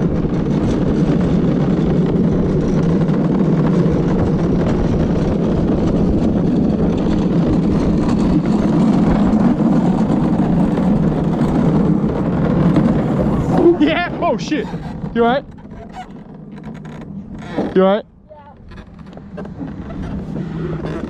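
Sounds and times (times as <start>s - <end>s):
wheels rolling on asphalt: 0.0s - 21.0s
wind rushing over microphone: 0.0s - 21.0s.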